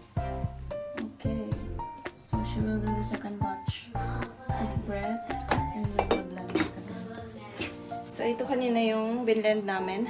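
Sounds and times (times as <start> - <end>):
metal jar knocks and clinks: 6.0 - 6.3.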